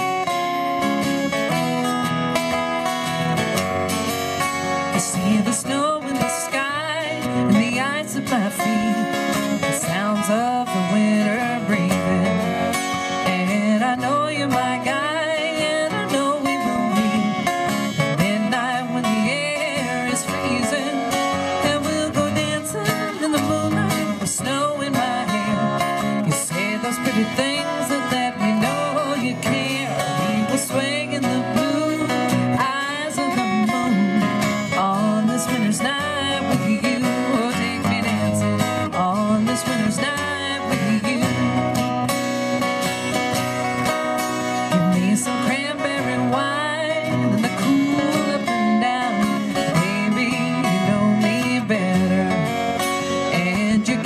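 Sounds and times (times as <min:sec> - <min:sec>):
acoustic guitars playing folk song: 0:00.0 - 0:54.0.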